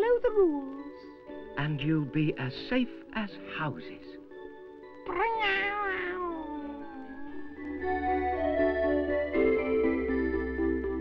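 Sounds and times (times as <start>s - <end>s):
background music: 0.0s - 11.0s
person meowing like a cartoon cat: 5.1s - 7.5s.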